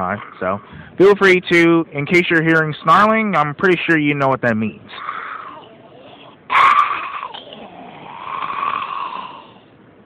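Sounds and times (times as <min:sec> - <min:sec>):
man snarling hoarsely: 0:04.9 - 0:09.7.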